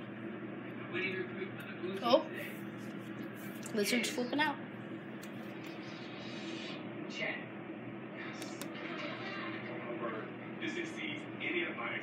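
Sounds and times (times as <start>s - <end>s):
low room hum: 0.0s - 12.0s
faint voices talking: 5.5s - 12.0s.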